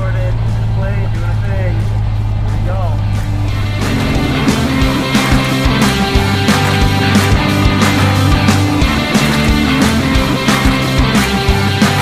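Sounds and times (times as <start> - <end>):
propeller plane engine droning: 0.0 - 12.0
rock music: 0.0 - 12.0.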